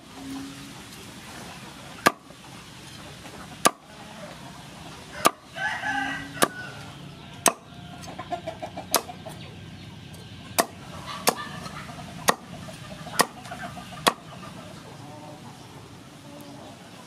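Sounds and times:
cleaver chopping on wooden board: 0:02.0 - 0:02.2, 0:03.6 - 0:03.8, 0:07.4 - 0:07.6, 0:10.6 - 0:11.4, 0:12.2 - 0:12.5, 0:13.2 - 0:13.4
chicken calling: 0:02.8 - 0:17.0.

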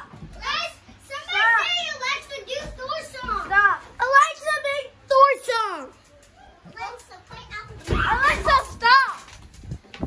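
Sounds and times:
children talking and calling out: 0:00.0 - 0:09.6.

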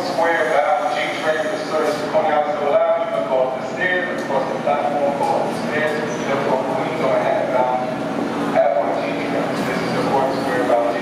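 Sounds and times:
subway train and station noise: 0:00.0 - 0:11.0.

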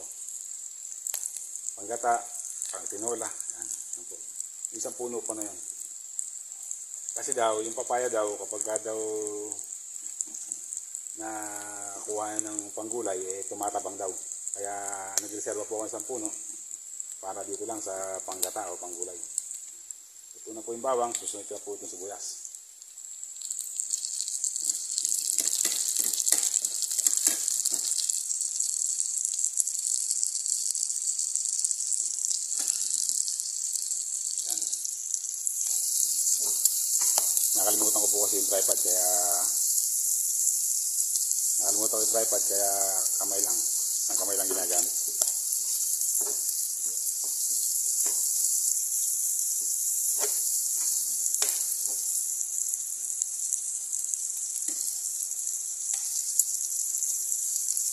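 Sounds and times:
garlic sizzling in hot oil: 0:00.0 - 0:57.9.

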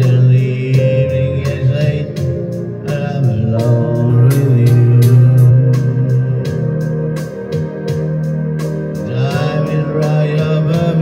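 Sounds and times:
keyboard backing rhythm beat: 0:00.0 - 0:11.0
organ-like keyboard chords: 0:00.0 - 0:11.0.

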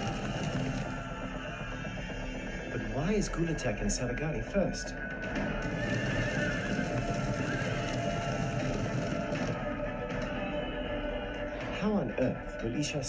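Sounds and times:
dense low rumble: 0:00.0 - 0:12.2
film score music: 0:00.0 - 0:13.0.

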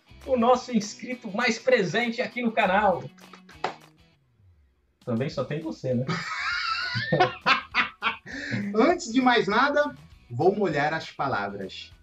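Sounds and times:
men laughing heartily: 0:06.1 - 0:08.9.

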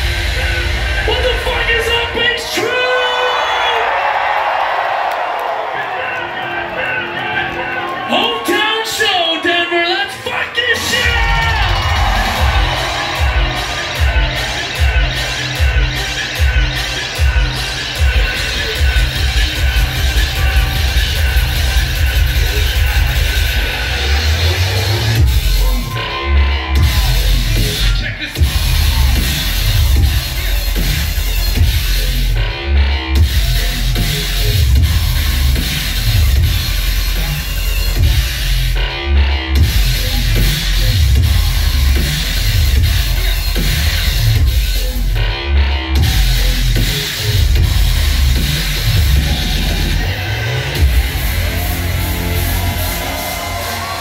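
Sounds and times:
bass-heavy electronic music: 0:00.0 - 0:54.0.

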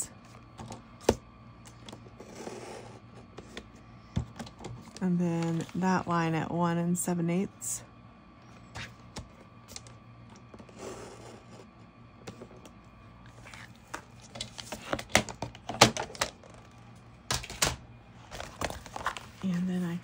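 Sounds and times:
paper rustling: 0:18.3 - 0:20.0.

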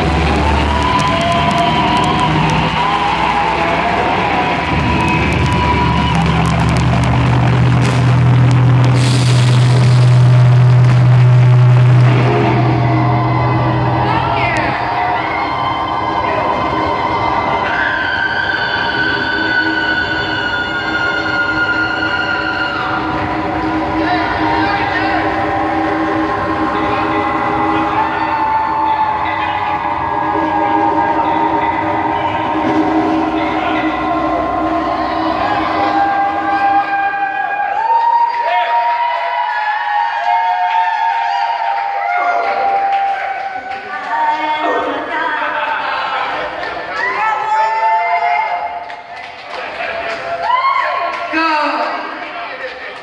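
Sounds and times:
amplified droning chords: 0:00.0 - 0:38.4.

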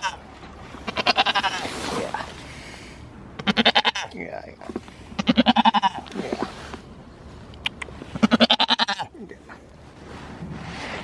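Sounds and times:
goat bleating: 0:00.9 - 0:01.7, 0:03.4 - 0:04.2, 0:05.2 - 0:06.2, 0:08.2 - 0:09.2.

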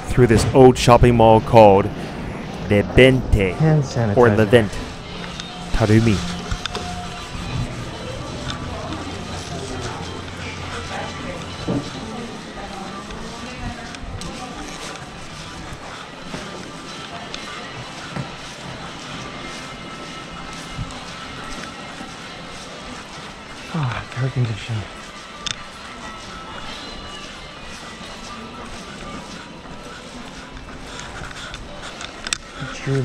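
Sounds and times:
background music: 0:00.0 - 0:33.0
indistinct voices: 0:00.0 - 0:33.0
steady low hum: 0:00.0 - 0:33.0.

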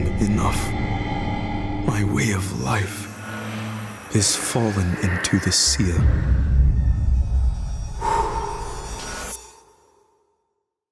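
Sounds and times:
deep low rumble: 0:00.0 - 0:04.2
harsh screeching swell: 0:00.0 - 0:06.9.

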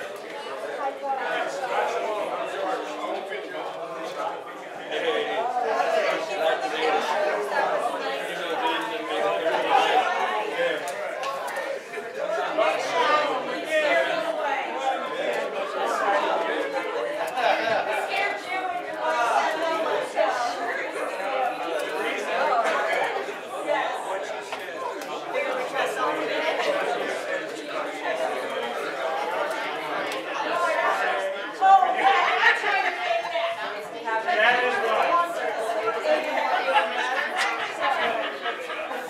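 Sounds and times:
crowd chatting in a hall: 0:00.0 - 0:39.0
many voices talking: 0:00.0 - 0:39.0.

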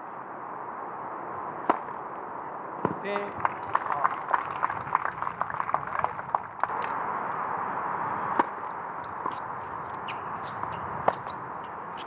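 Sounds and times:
tennis court ambience: 0:00.0 - 0:12.0
tennis racket hitting ball: 0:08.3 - 0:09.4.

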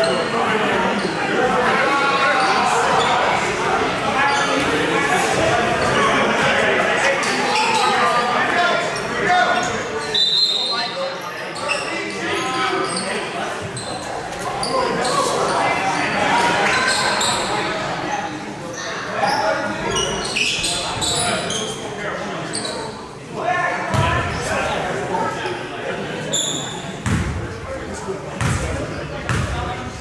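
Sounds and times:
players and spectators voices: 0:00.0 - 0:30.0.

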